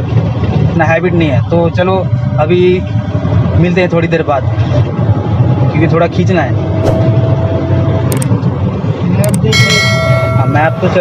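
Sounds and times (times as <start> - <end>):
diesel engine and road noise: 0.0 - 11.0
ringing bell chime: 9.5 - 11.0.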